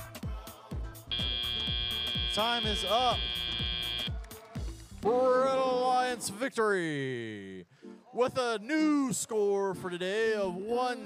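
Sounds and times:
music with bass-drum beat: 0.0s - 5.0s
buzzer high tone: 1.1s - 4.1s.

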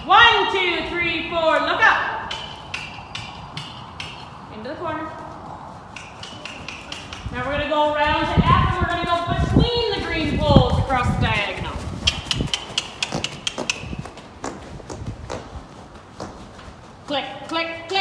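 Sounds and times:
horse hoofbeats on dirt: 2.3s - 18.0s.

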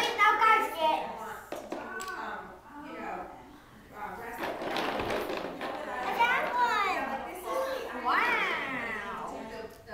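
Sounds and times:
young children playing: 0.0s - 3.2s, 4.0s - 9.7s.

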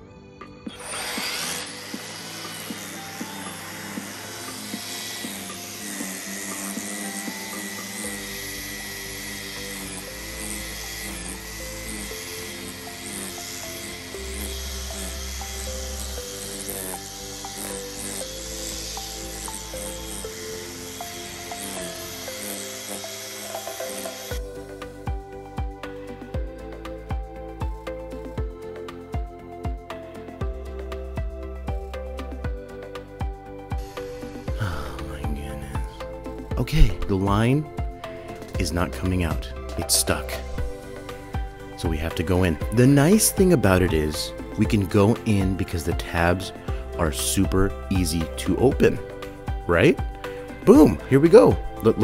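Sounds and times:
background music with bass line: 0.0s - 52.0s
string trimmer whirring: 0.4s - 52.0s.

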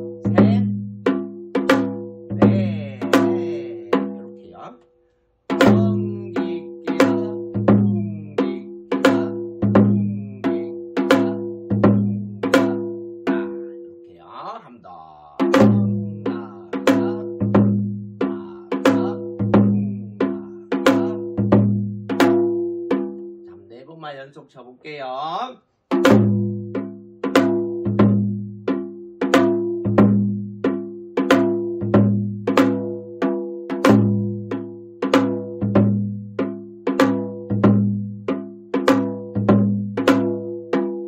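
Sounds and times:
hourglass drum playing rhythm: 0.0s - 4.5s, 5.5s - 14.0s, 15.2s - 23.4s, 25.9s - 41.0s
man speaking: 0.3s - 0.7s, 2.4s - 4.8s, 5.6s - 10.9s, 13.3s - 17.4s, 18.2s - 21.2s, 23.5s - 25.6s.

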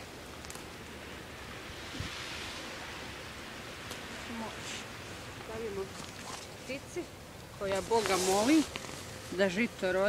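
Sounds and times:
creek flowing: 0.0s - 10.0s.

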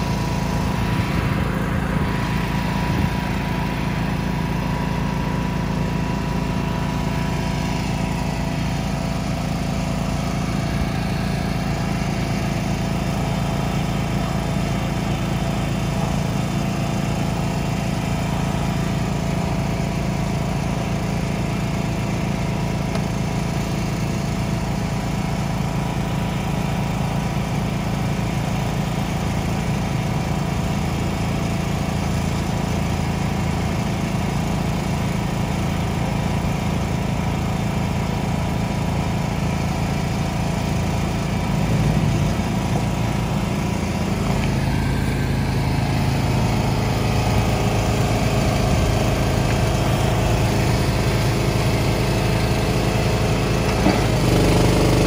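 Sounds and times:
engine running steadily: 0.0s - 55.0s.

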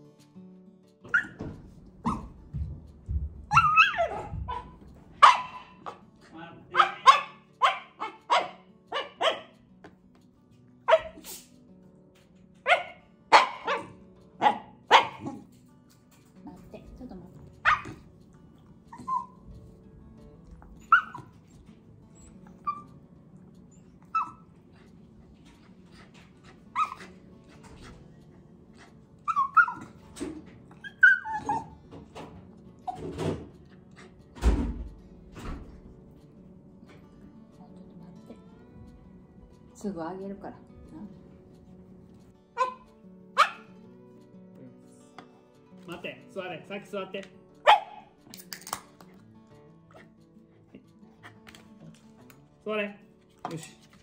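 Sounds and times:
dog whining and yelping: 1.1s - 2.4s, 3.5s - 6.0s, 17.6s - 19.7s, 20.6s - 28.0s, 28.7s - 32.2s.

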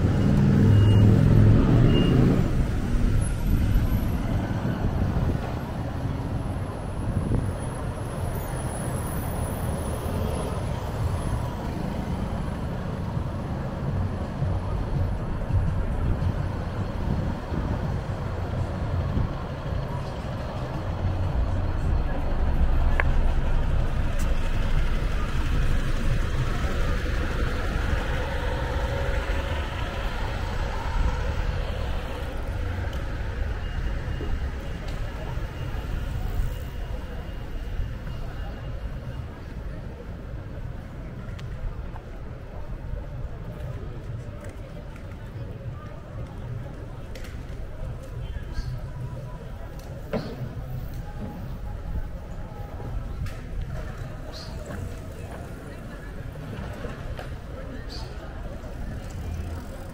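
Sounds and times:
bus driving past: 0.0s - 59.9s
rumble of traffic: 0.0s - 59.9s.

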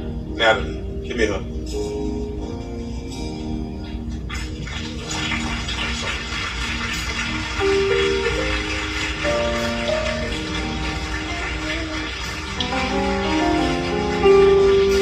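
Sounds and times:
slow church music: 0.0s - 15.0s
congregation noise: 3.9s - 15.0s.

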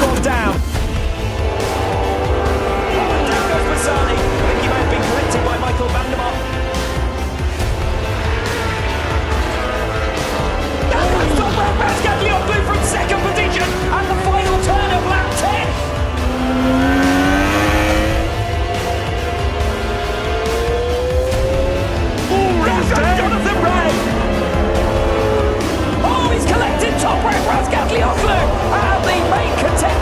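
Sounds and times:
background music with low beat: 0.0s - 30.0s
motorbike engine accelerating: 0.6s - 30.0s.

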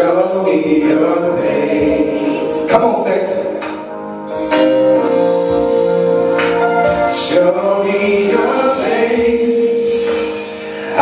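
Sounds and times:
man singing into microphone: 0.0s - 3.7s, 7.1s - 11.0s.

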